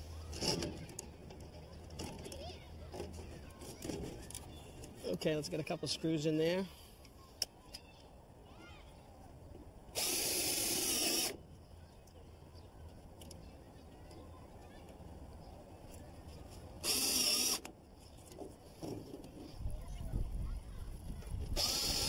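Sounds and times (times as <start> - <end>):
cordless drill driving screws into metal: 10.0 - 11.4, 16.8 - 17.7, 21.6 - 22.0.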